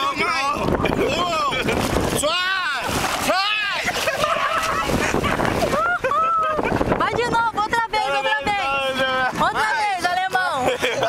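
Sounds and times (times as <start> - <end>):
wind on microphone: 0.0 - 9.8.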